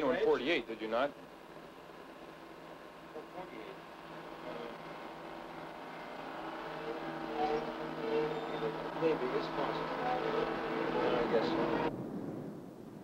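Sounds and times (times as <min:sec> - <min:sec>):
engine humming: 0:00.0 - 0:11.9
faint muffled voices: 0:06.7 - 0:11.9.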